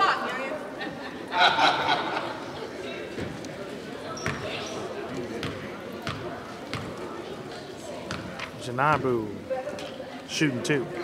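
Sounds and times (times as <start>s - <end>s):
chatter and voices: 0.0s - 11.0s.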